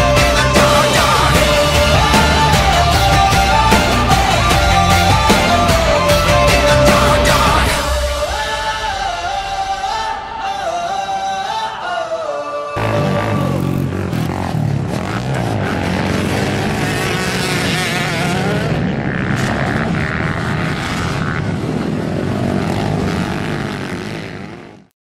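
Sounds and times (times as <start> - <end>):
quad engine revving: 0.0 - 8.2, 12.8 - 24.9.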